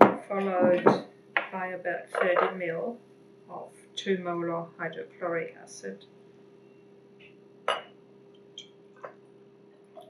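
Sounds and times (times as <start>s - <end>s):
glass clinking against glass: 7.7s - 7.9s.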